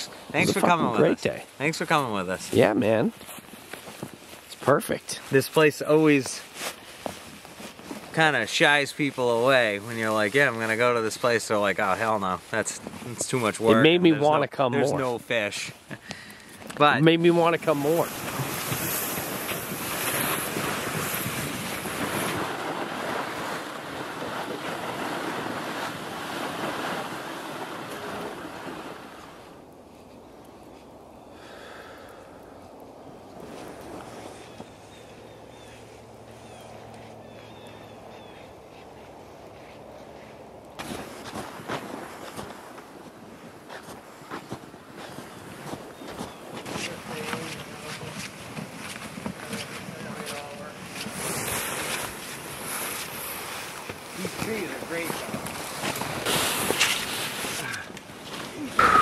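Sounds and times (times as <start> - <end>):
plastic sleds scraping over snow: 0.0 - 29.7, 33.4 - 37.6, 38.2 - 59.0
footsteps crunching in snow: 0.2 - 13.9, 17.6 - 28.9, 33.4 - 59.0.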